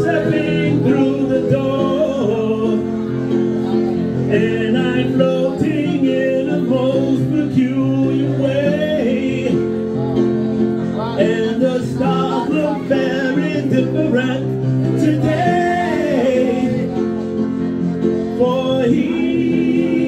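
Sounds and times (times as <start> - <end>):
instrumental accompaniment: 0.0 - 20.0
man singing into microphone: 0.0 - 20.0.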